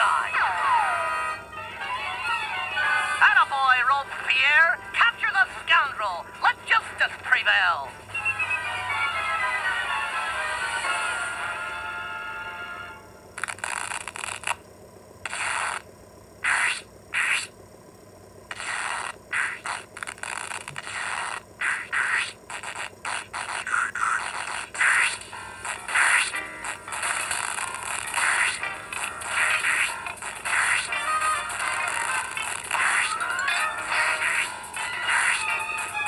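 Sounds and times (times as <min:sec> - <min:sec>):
falling run of notes: 0:08.0 - 0:13.1
short noisy bursts: 0:13.3 - 0:17.7, 0:18.3 - 0:36.0.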